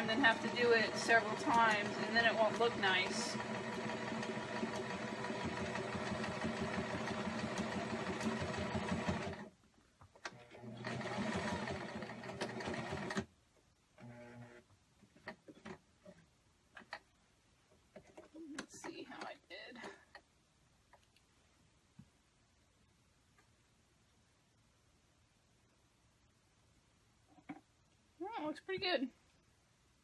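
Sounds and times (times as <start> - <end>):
sewing machine stitching: 0.0 - 9.5, 10.2 - 13.3
clicks and handling noises: 15.0 - 20.3.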